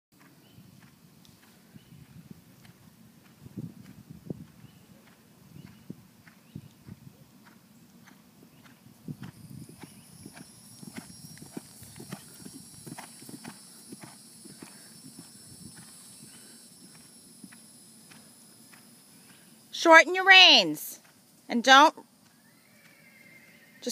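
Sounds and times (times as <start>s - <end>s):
horse hooves thudding on grass: 0.2s - 23.0s
high-pitched buzz: 9.4s - 18.6s.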